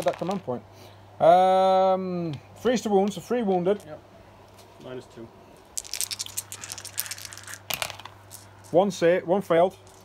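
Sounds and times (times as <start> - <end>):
dice rattling and tumbling: 0.0 - 0.5, 5.7 - 8.9.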